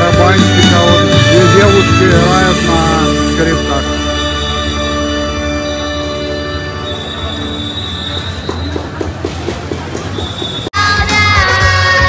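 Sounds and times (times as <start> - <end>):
crowd and street din: 0.0 - 12.0.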